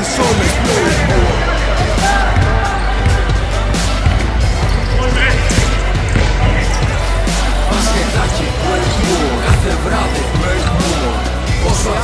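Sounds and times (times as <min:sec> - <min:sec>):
backing music with bass: 0:00.0 - 0:12.0
players' voices: 0:00.0 - 0:12.0
basketball bouncing: 0:02.2 - 0:07.5, 0:08.9 - 0:11.0.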